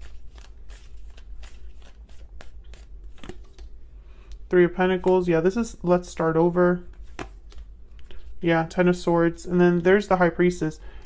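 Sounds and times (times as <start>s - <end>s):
cards being shuffled: 0.0s - 5.6s, 6.9s - 8.4s
low steady hum: 0.0s - 11.0s.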